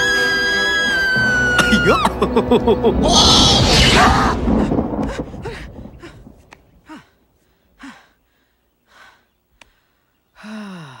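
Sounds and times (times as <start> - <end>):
person gasping and sighing: 4.6 - 7.2, 10.4 - 11.0.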